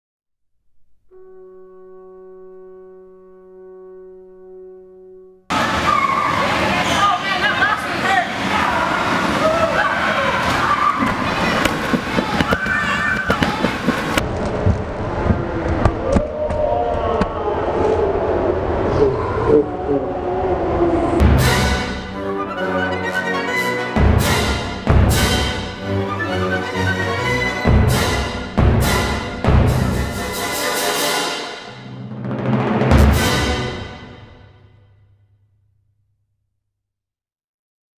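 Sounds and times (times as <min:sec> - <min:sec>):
held musical chord: 0:01.1 - 0:05.5
young voices shouting and talking: 0:05.5 - 0:14.0
knocks and bumps: 0:11.4 - 0:16.6.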